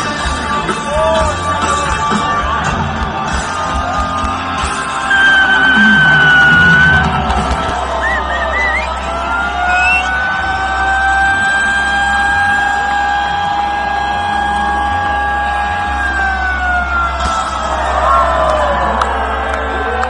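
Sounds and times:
live rock band: 0.0s - 13.4s
sustained high note: 5.0s - 7.4s.

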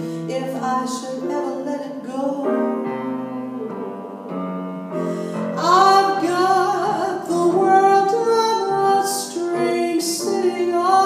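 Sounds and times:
woman singing jazz: 0.0s - 4.3s, 5.2s - 11.0s
grand piano accompaniment: 0.0s - 11.0s.

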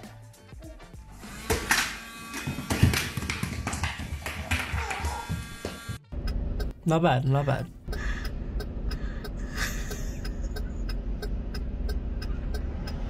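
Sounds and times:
small electric motor buzzing: 1.2s - 3.2s, 4.8s - 6.0s.

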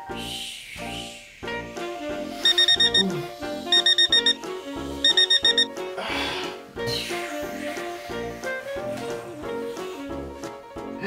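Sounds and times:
background music: 0.0s - 11.0s
alarm clock beeping: 2.4s - 5.7s.

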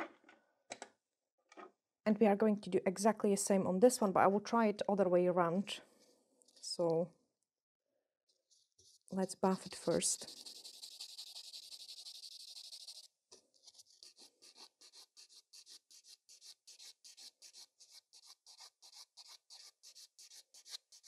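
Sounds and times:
nail buffer scratching: 8.4s - 21.0s.

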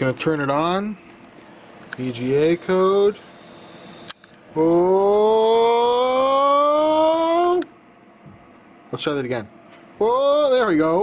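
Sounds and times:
man exclaiming ohhh: 4.6s - 7.6s.

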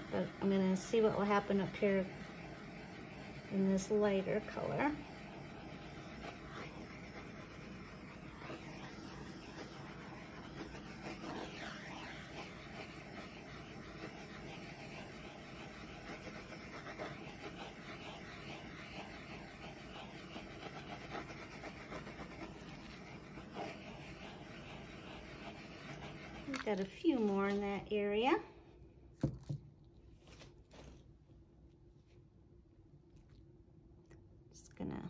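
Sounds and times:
torch hissing: 0.0s - 27.9s.

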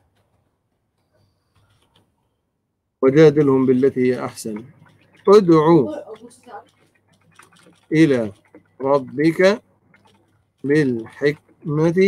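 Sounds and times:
computer keyboard typing: 3.3s - 12.0s.

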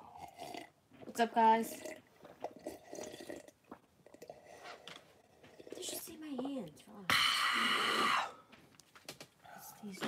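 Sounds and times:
sipping and swallowing coffee: 0.0s - 0.8s, 1.7s - 6.0s, 7.1s - 8.4s.

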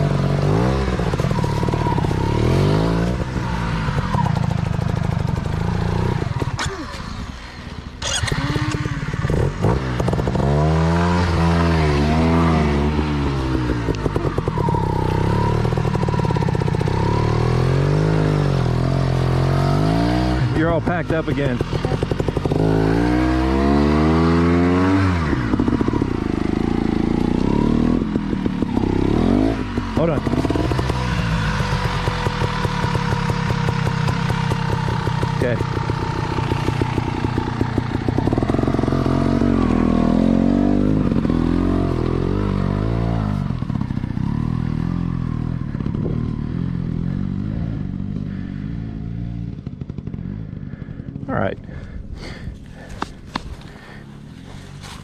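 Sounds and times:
dirt bike engine revving: 0.0s - 55.0s.

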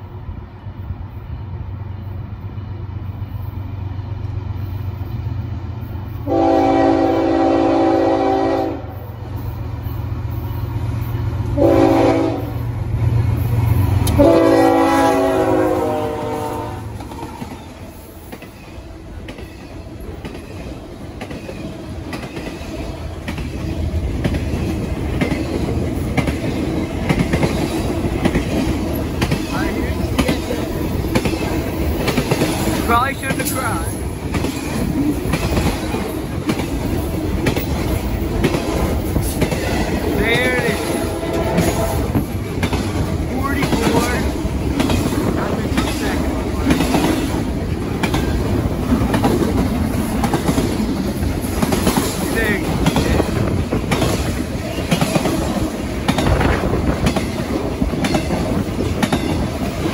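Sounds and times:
locomotive air horn blasts: 6.2s - 9.0s, 11.6s - 12.6s, 14.1s - 16.9s, 40.8s - 42.2s
train wheels clacking over rail joints: 17.0s - 59.9s.

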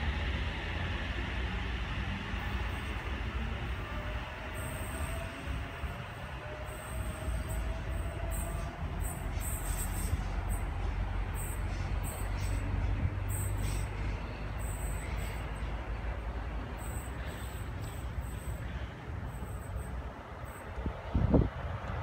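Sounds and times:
electric train low rumble: 0.0s - 22.0s.

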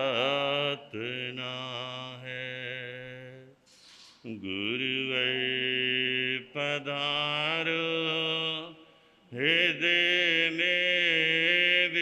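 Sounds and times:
man singing unaccompanied: 0.0s - 3.6s, 4.3s - 8.8s, 9.4s - 12.0s.

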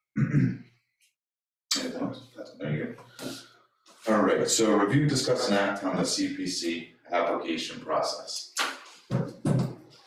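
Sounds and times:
person clearing throat: 0.1s - 0.6s
person speaking: 1.7s - 9.9s.

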